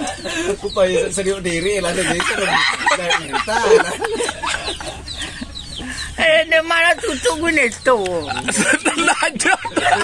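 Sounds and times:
people laughing: 0.0 - 1.0, 1.8 - 6.2, 8.1 - 10.0.

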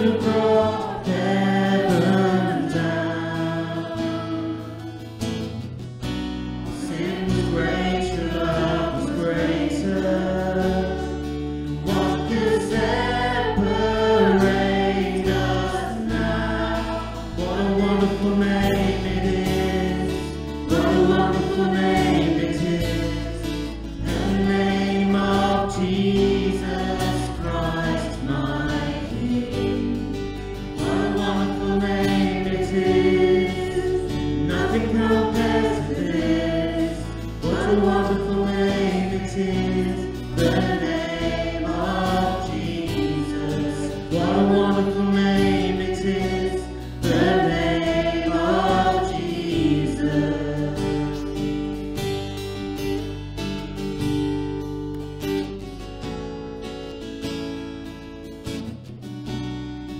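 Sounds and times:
voices singing worship song: 0.0 - 53.1
strummed acoustic guitars: 0.0 - 59.9.

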